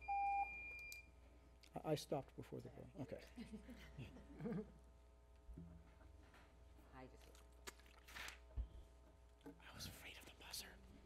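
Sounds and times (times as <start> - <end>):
electronic timer beep: 0.0 - 1.1.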